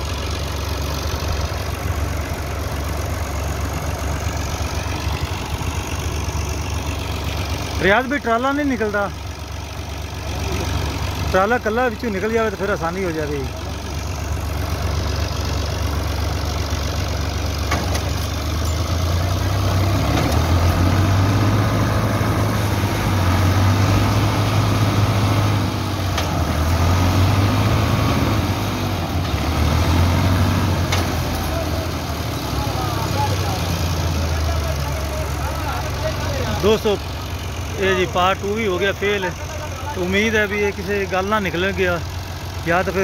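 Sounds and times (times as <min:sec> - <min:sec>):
tractor engines straining: 0:00.0 - 0:43.0
voices: 0:00.8 - 0:18.9, 0:28.8 - 0:43.0.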